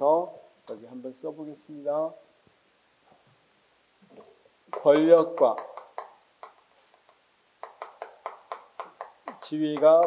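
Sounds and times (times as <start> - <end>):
chalk tapping on chalkboard: 4.7 - 10.0.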